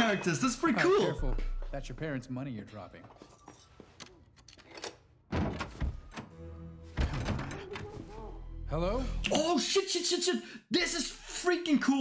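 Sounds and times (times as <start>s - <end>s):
tense music: 5.8s - 9.4s.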